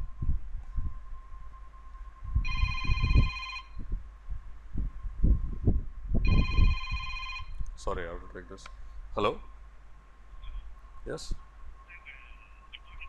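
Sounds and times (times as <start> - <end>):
phone ringing: 2.4 - 3.8, 6.3 - 7.6.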